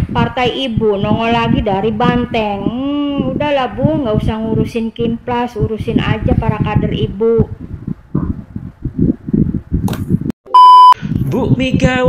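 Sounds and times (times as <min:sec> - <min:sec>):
loud electronic beep: 0:10.5 - 0:11.0.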